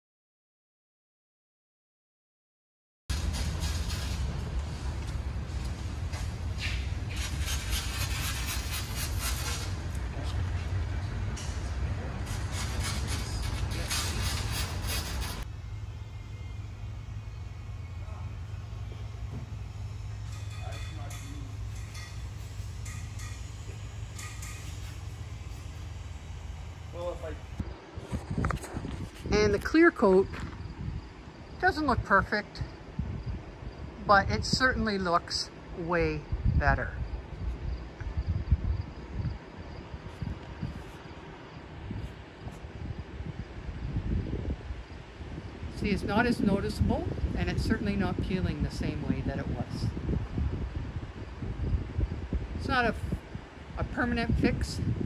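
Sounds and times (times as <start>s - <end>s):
steady low hum: 3.1s - 55.0s
wind buffeting microphone: 3.1s - 55.0s.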